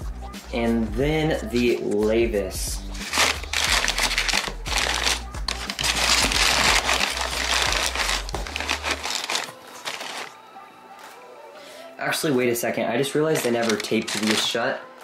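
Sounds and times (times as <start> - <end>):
packing paper crinkling: 2.9 - 10.4, 13.2 - 15.0.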